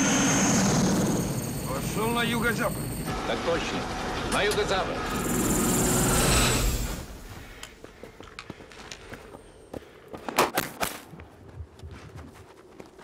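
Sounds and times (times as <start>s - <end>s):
footsteps crunching on gravel: 7.3s - 13.0s.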